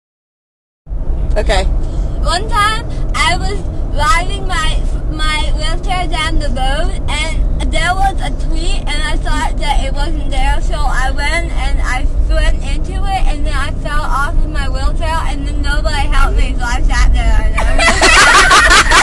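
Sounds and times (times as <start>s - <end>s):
vehicle rumble from inside cabin: 0.9s - 19.0s
people talking: 1.4s - 19.0s.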